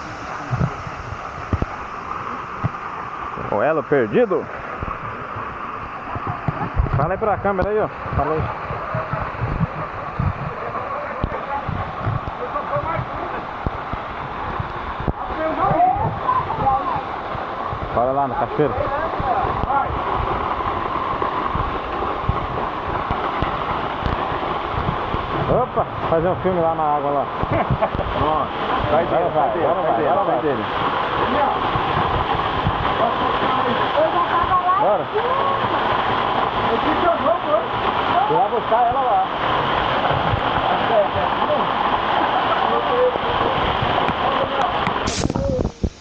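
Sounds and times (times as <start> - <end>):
waterfall rushing: 0.0 - 46.0
microphone bumps: 6.1 - 18.0, 19.2 - 25.5.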